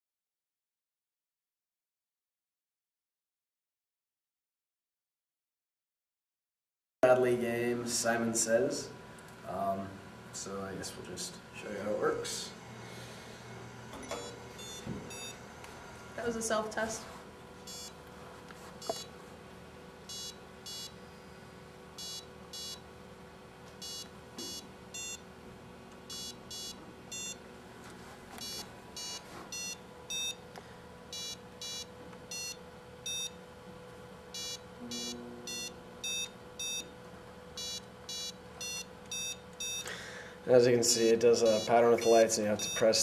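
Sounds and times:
short electronic beeps: 0:14.1 - 0:15.4, 0:17.7 - 0:18.0, 0:20.1 - 0:20.9, 0:22.0 - 0:22.8, 0:23.8 - 0:25.2, 0:26.1 - 0:27.4, 0:28.4 - 0:30.4, 0:31.2 - 0:33.3, 0:34.4 - 0:36.9, 0:37.6 - 0:39.8.

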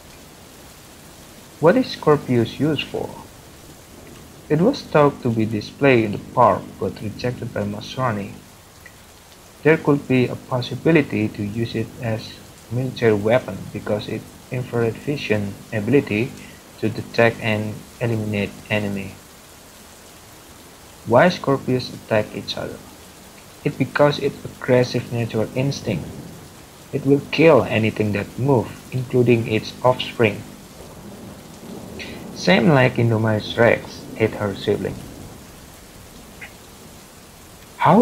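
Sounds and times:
steady hiss: 0:00.0 - 0:38.0.

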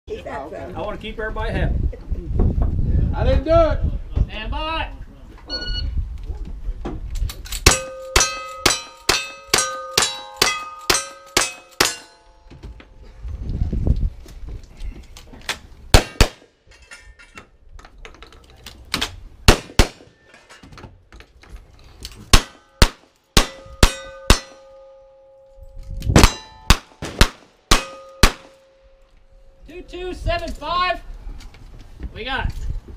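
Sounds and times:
steel target ringing: 0:07.6 - 0:12.5, 0:22.4 - 0:25.6, 0:26.2 - 0:27.0, 0:27.7 - 0:29.6
gunshots: 0:15.9 - 0:16.5, 0:19.5 - 0:20.2, 0:22.3 - 0:24.6, 0:26.2 - 0:28.6.

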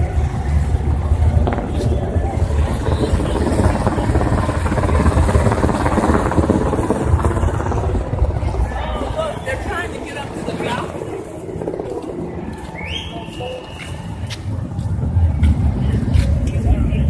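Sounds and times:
engine rumbling: 0:00.0 - 0:17.0.

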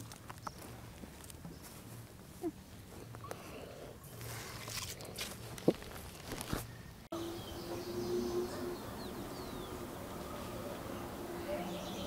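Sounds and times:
footsteps on dirt path: 0:00.0 - 0:06.8.

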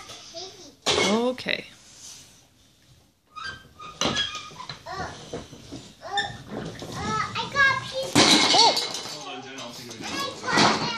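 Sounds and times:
carton crashing to the floor: 0:06.4 - 0:09.2.

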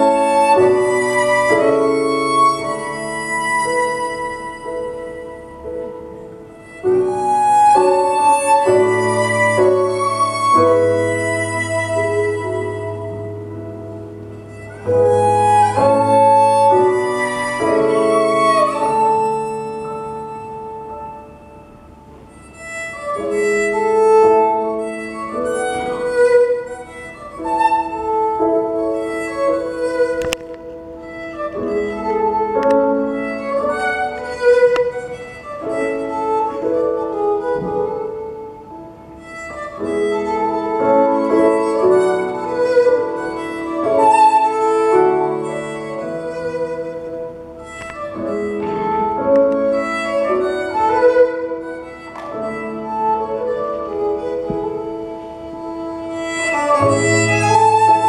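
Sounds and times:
two fiddles playing: 0:00.0 - 0:58.0.

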